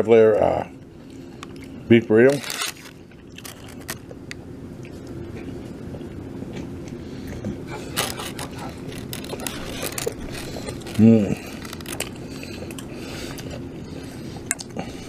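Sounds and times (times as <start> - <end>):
steady low hum: 0.0 - 15.0
paper wrapper crinkling: 2.2 - 4.1, 7.8 - 12.3.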